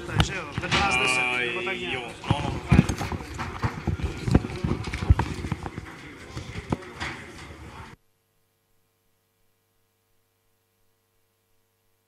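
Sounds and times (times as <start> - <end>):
irregular thumps and knocks: 2.2 - 7.3.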